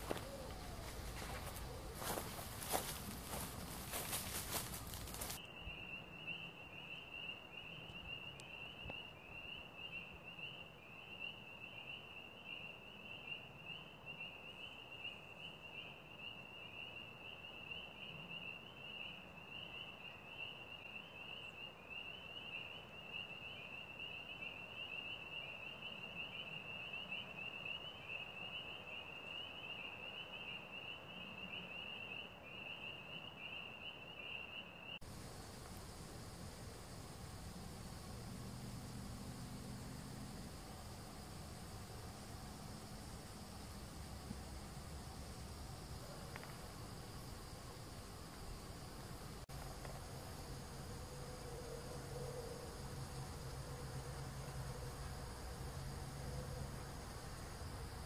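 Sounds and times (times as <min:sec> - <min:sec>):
faint outdoor background noise: 0:00.0 - 0:58.0
insects trilling: 0:00.0 - 0:58.0.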